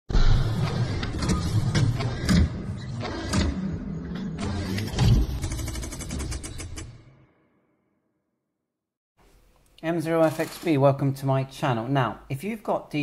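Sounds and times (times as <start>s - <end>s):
sharp metallic clicks and clanks: 4.4s - 7.0s.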